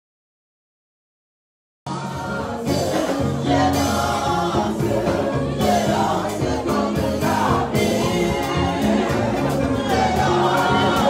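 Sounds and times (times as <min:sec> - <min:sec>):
band accompaniment: 0:01.9 - 0:11.0
gospel choir singing: 0:01.9 - 0:11.0
steady drum beat: 0:01.9 - 0:11.0.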